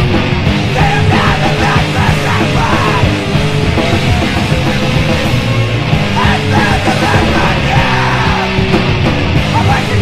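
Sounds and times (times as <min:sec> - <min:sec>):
loud rock music: 0:00.0 - 0:10.0
yelled vocals: 0:00.0 - 0:10.0.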